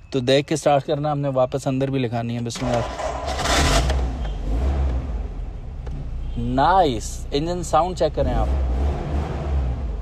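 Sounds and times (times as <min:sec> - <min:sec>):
car engine low rumble: 0:02.6 - 0:10.0.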